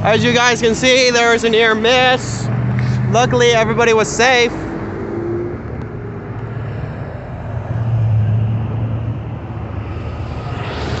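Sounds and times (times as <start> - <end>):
car engine low hum: 0.0 - 11.0
road traffic rushing past: 0.0 - 11.0.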